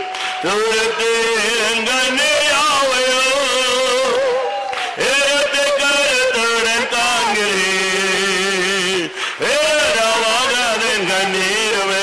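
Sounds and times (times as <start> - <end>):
man chanting prayer: 0.4 - 12.0.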